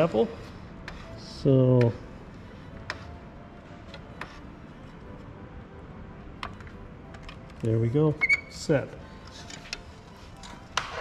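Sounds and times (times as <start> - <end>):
low room hum: 0.0 - 10.8.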